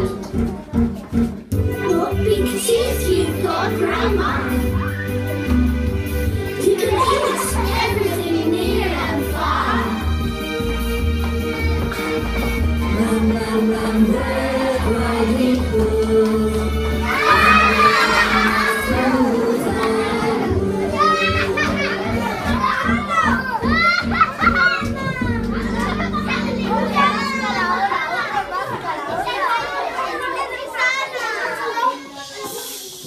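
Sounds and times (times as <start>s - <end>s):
music with held notes: 0.0s - 28.8s
children shouting: 6.8s - 10.0s, 16.8s - 33.0s.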